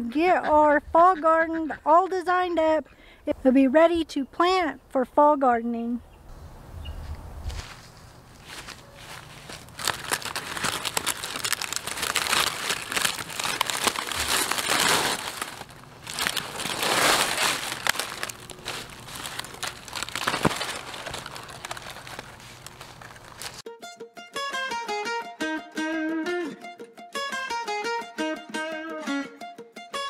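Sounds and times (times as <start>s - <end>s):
dry leaves crackling and tearing: 8.4s - 23.6s
plucked string music: 23.6s - 30.0s.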